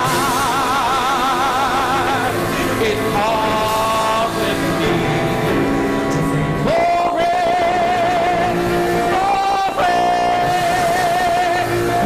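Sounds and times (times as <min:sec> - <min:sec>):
instrumental accompaniment: 0:00.0 - 0:12.0
man singing gospel with vibrato: 0:00.0 - 0:12.0.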